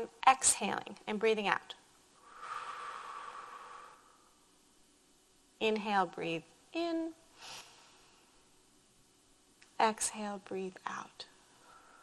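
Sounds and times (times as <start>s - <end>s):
woman breathing in: 2.2s - 4.5s, 7.4s - 8.4s, 11.6s - 12.0s.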